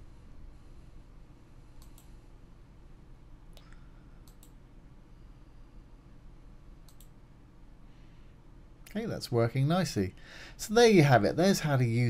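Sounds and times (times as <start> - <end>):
faint low room hum: 0.0 - 12.0.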